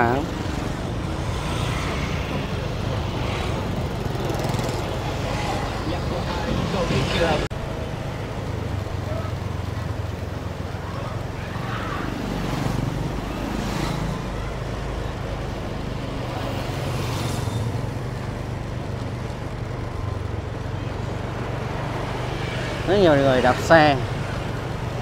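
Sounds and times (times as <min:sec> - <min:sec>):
motorbikes and scooters passing: 0:00.0 - 0:25.0.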